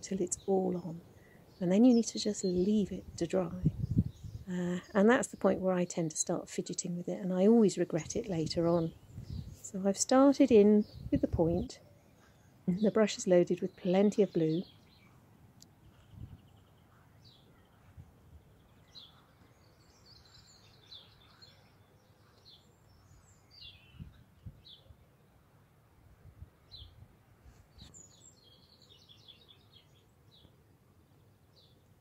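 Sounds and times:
faint bird chirps: 0:15.8 - 0:25.4.

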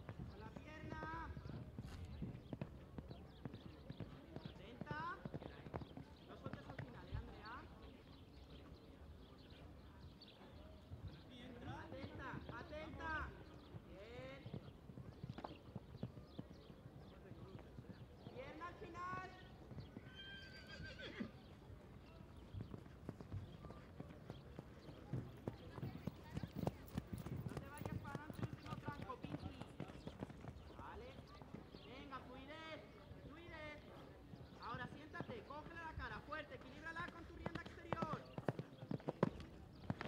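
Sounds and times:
horse hoofbeats on sand: 0:21.9 - 0:31.8.

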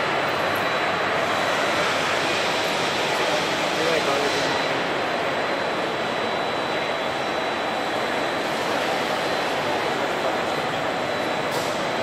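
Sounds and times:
machinery and ventilation din: 0:00.0 - 0:12.0.

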